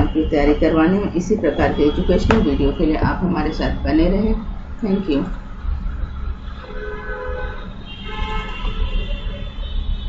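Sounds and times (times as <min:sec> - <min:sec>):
horn-like tones: 0:06.0 - 0:10.0.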